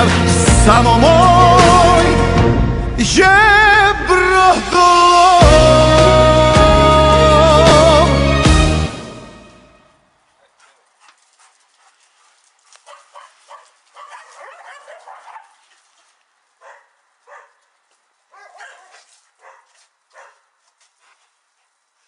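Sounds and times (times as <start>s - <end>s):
dogs barking: 10.4s - 15.7s, 16.6s - 17.7s, 18.3s - 20.6s.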